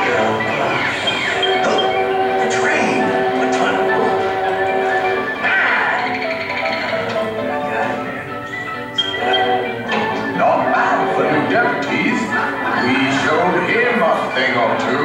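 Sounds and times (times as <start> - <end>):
film soundtrack music with voices: 0.0 - 15.0.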